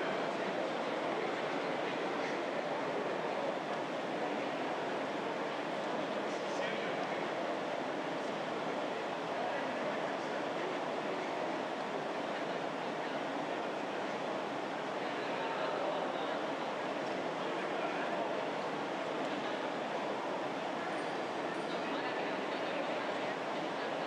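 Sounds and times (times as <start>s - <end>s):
murmur of many voices: 0.0s - 24.0s.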